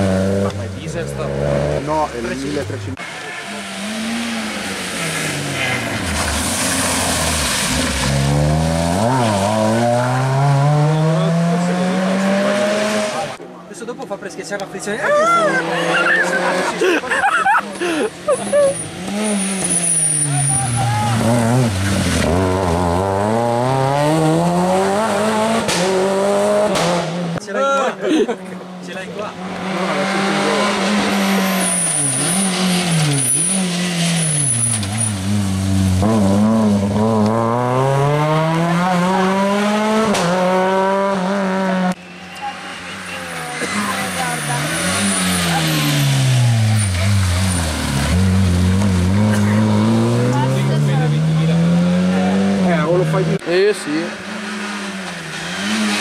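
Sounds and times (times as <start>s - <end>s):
car engines revving hard: 0.0s - 13.4s, 14.6s - 56.0s.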